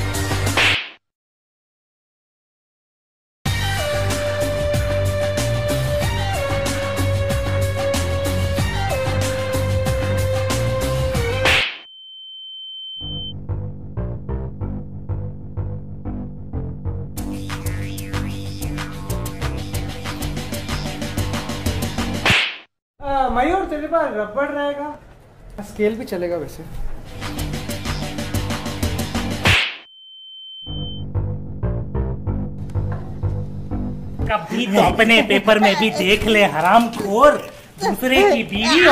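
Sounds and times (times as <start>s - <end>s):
whip-crack sound effect: 0.5s - 1.0s, 11.4s - 11.8s, 22.2s - 22.7s, 29.4s - 29.9s
steady high beep tone: 11.8s - 13.3s, 29.9s - 31.0s.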